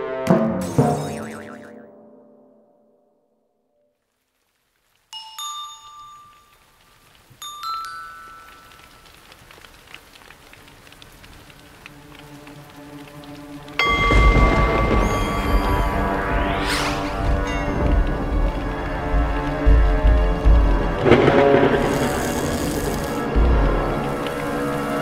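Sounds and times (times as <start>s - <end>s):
soft rain-like hiss: 3.8s - 25.0s
bell-like chimes: 5.2s - 6.7s, 13.8s - 16.4s.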